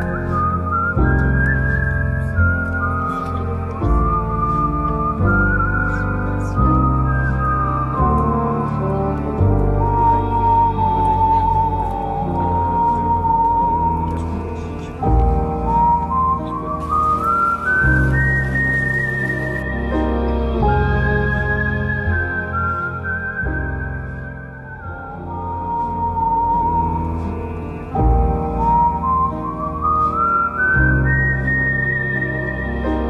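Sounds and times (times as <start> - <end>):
high pure-toned melody: 0.0 - 33.0
instrumental background music: 0.0 - 33.0
song with held chords and bass: 0.0 - 33.0.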